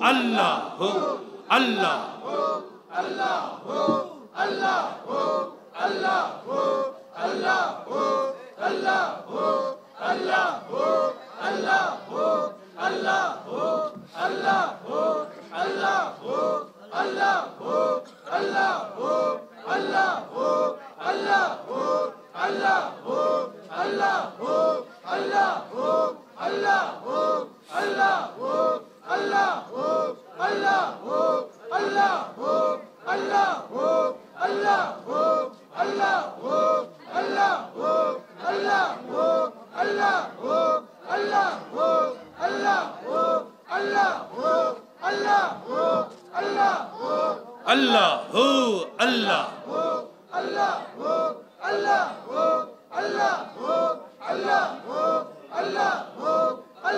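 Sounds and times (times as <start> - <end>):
men chanting in unison: 0.0 - 56.9.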